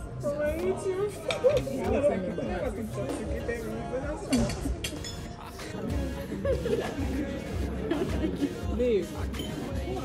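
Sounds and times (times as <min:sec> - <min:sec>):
indistinct conversation: 0:00.0 - 0:10.0.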